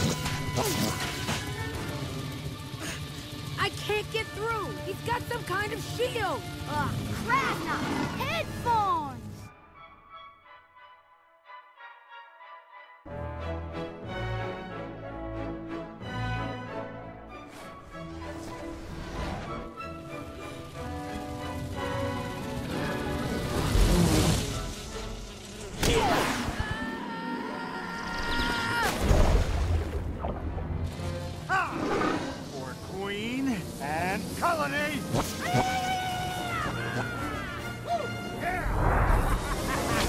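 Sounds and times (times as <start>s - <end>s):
orchestral score: 0.0s - 40.0s
vocal cries and yelps: 35.3s - 38.6s.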